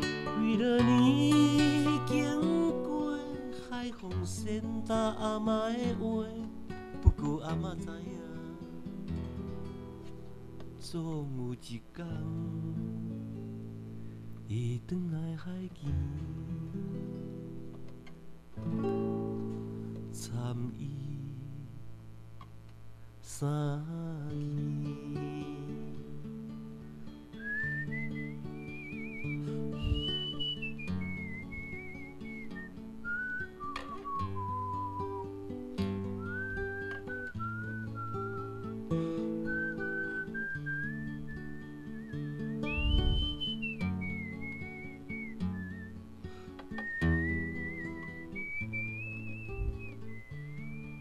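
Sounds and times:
man whistling a melody: 0.0s - 6.1s, 27.3s - 51.0s
acoustic guitar chords: 0.0s - 51.0s.

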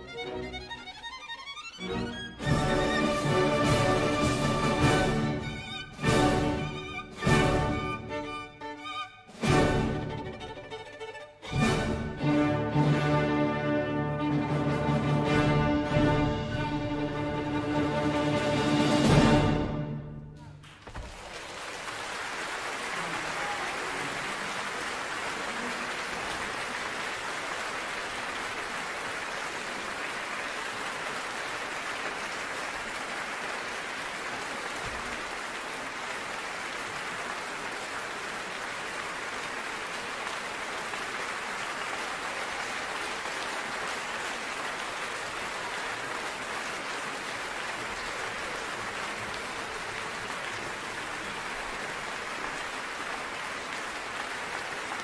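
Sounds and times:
audience applauding: 0.0s - 13.3s, 20.4s - 55.0s.

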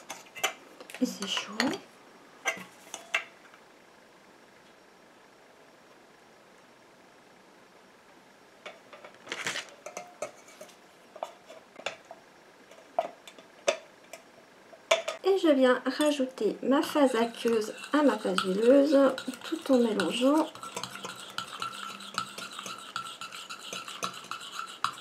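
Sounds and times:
metal pots clinking and knocking: 14.9s - 15.2s.

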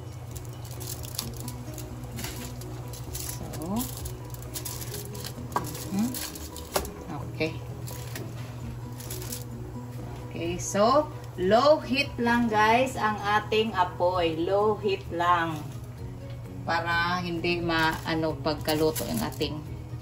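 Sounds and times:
foil crinkling and rustling: 0.2s - 7.0s, 7.8s - 9.5s, 17.8s - 19.6s.

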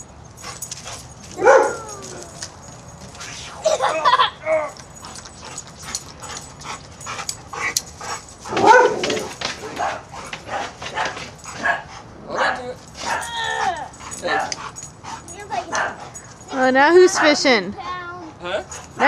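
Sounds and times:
dog whimpering and yipping: 1.4s - 2.5s, 13.0s - 19.0s.

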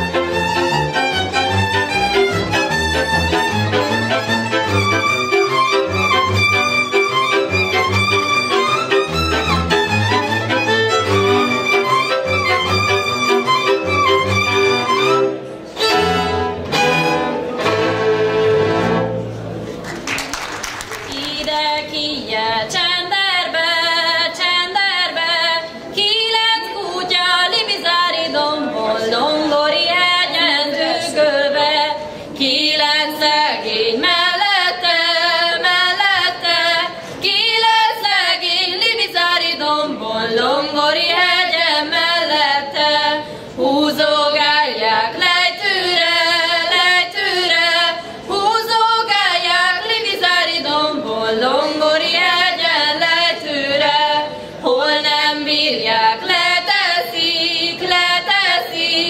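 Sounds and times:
girls singing folk song in unison: 21.1s - 59.0s.

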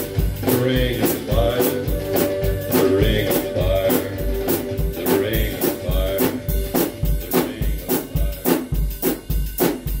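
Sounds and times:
backing music: 0.0s - 10.0s
drum kit steady beat: 0.0s - 10.0s.

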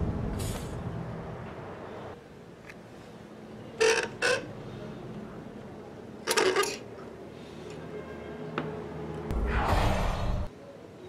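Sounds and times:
brief whoosh: 9.3s - 10.5s.

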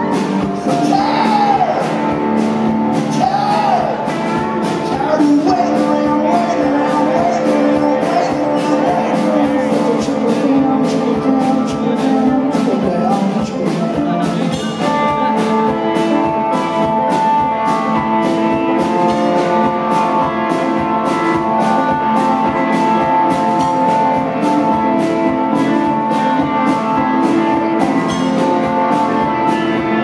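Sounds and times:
live rock band playing: 0.0s - 30.0s
long held lead guitar notes: 0.0s - 30.0s.

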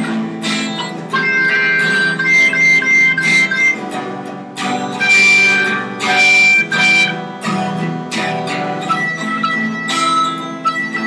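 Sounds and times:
guitar strumming: 0.0s - 11.0s
high melody of held notes: 0.0s - 11.0s.

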